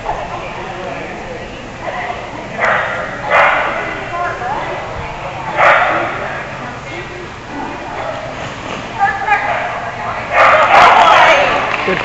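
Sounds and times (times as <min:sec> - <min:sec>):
background chatter of voices: 0:00.0 - 0:12.0
dog barking: 0:02.6 - 0:03.8, 0:05.5 - 0:06.1, 0:10.4 - 0:11.0.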